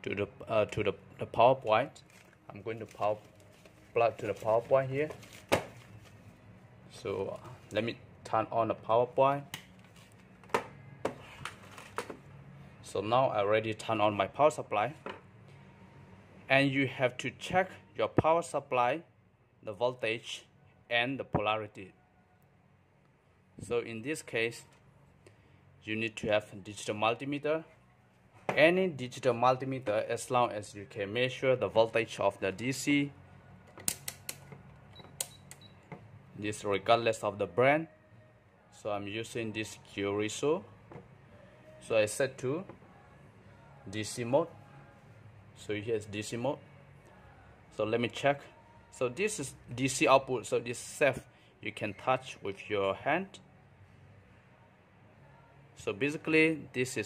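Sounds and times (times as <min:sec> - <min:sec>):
faint high beep: 0:34.9 - 0:35.8.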